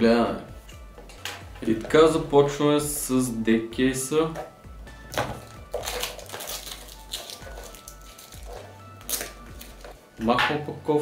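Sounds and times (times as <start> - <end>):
background music with bass: 0.0 - 11.0
plastic wrap crinkling: 5.4 - 10.0.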